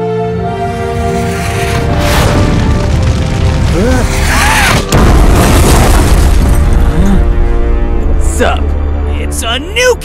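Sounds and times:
deep boom with rumbling tail: 2.0 - 8.2.

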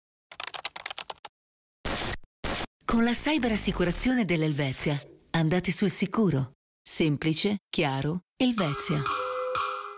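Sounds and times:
rapid typing on a keyboard: 0.3 - 1.3.

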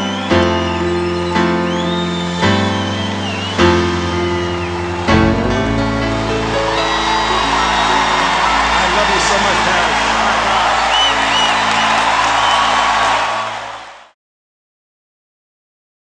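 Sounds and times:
audience whistles: 0.0 - 14.1
audience cheering and applause: 0.0 - 14.2
held final music chord: 3.2 - 9.1.

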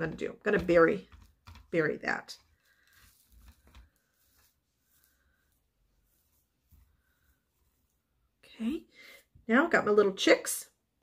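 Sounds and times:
soft rustles of handling moss: 2.4 - 9.4.

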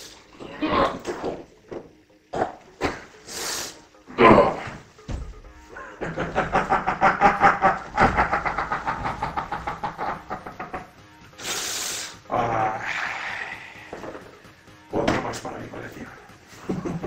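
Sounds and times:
man laughing theatrically: 5.6 - 11.4.

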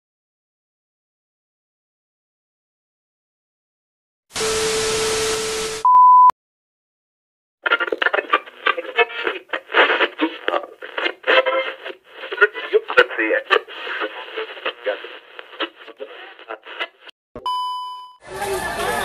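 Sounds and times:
test-tone beep: 5.8 - 6.3, 17.4 - 18.2
chopped radio voices: 7.6 - 17.2.

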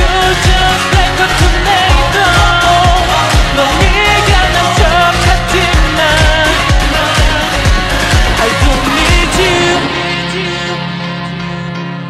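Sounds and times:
pitched-down sung vocals: 0.0 - 11.8
pop backing track: 0.0 - 12.0
steady kick drum: 5.8 - 10.3.

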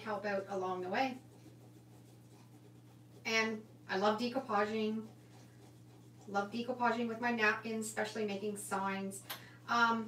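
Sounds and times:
fingertips rubbing paper: 0.0 - 8.0
steady low hum: 0.0 - 10.0.

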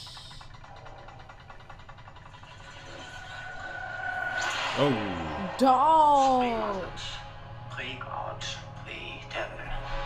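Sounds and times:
faint mechanical ticking: 0.0 - 2.7
low rumbling drone: 0.0 - 10.0.

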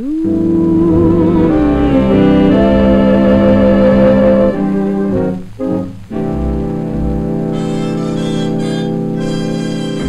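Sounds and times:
dance band sustained chord: 0.0 - 10.0.

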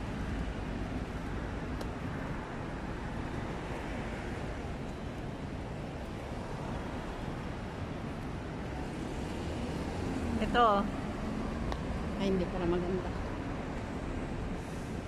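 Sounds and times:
cars driving past: 6.2 - 15.0.

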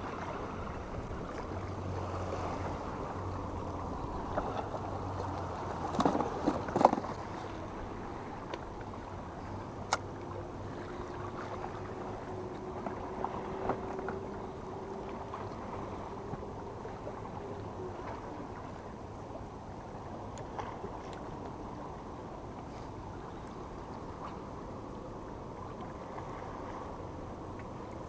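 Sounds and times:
faint hum: 0.0 - 28.0
seashore rumble: 0.0 - 28.0.

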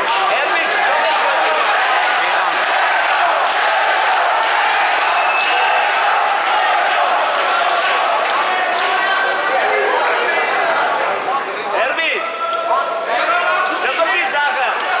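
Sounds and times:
crowd of men shouting: 0.0 - 11.1.

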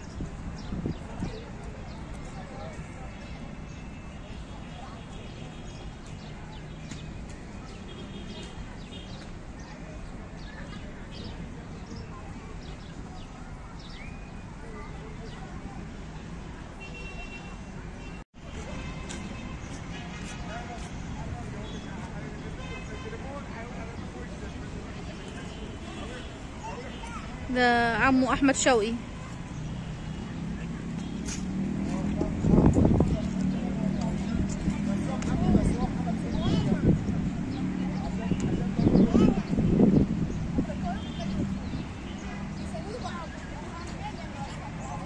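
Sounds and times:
passing traffic: 0.0 - 45.0
people's voices: 0.0 - 45.0
birds chirping: 18.9 - 45.0.

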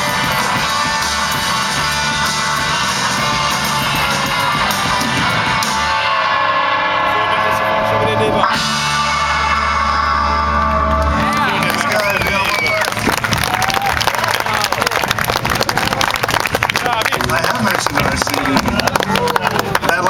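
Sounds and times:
surf rock band playing: 0.0 - 20.0.

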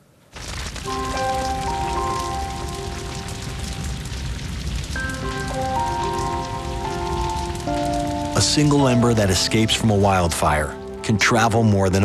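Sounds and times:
forest fire crackling and rumbling: 0.3 - 12.0
music of long held chords: 0.8 - 12.0.

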